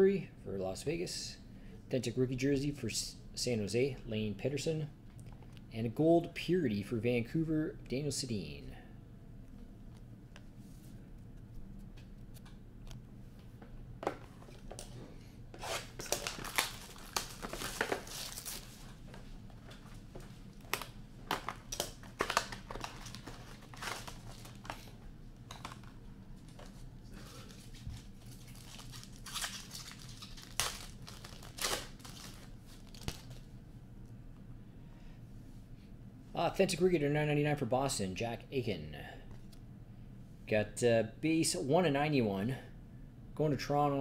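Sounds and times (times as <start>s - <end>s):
wrappers tearing and crinkling: 15.6s - 19.0s, 20.5s - 24.9s, 25.6s - 33.5s.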